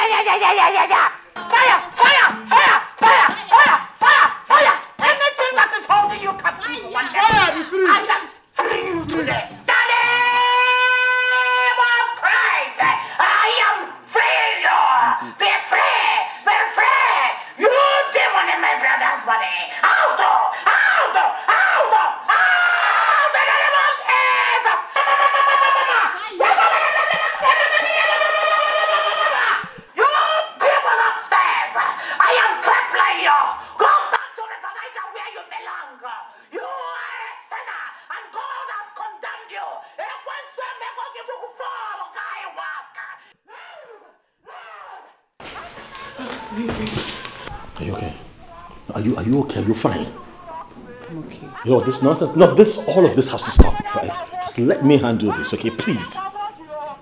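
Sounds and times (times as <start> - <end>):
raised wordless voices: 0.0 - 57.0
woman shouting through megaphone: 1.4 - 9.0.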